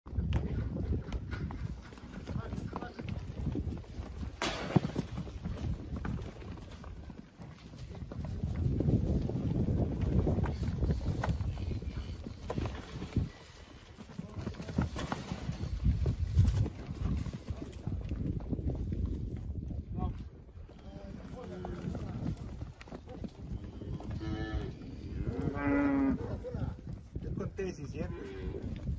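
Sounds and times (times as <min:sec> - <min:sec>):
hooves on dirt: 0:00.1 - 0:28.9
cows mooing: 0:23.8 - 0:26.5.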